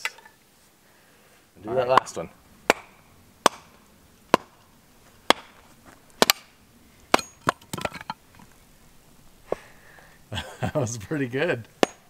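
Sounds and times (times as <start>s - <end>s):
machete chopping firewood: 1.9s - 5.6s, 6.2s - 8.1s, 11.8s - 12.0s.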